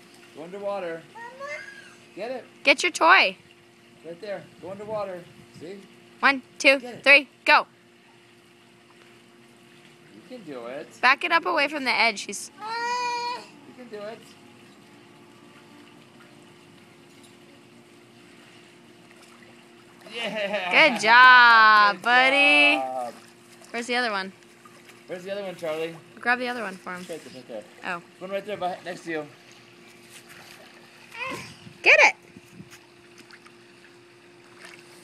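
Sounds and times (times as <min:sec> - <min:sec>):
pool water lapping: 0:00.0 - 0:35.0
steady low hum: 0:00.0 - 0:35.0
person calling loudly: 0:12.5 - 0:13.8.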